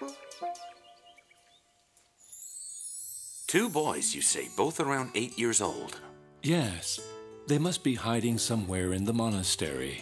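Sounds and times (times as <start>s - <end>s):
high shimmering transition sound: 2.3s - 4.1s.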